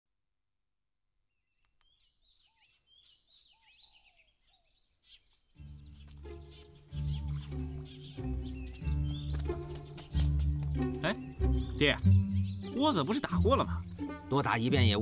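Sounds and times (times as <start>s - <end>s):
birds chirping and whistling: 1.5s - 15.0s
background music with deep notes: 5.6s - 15.0s.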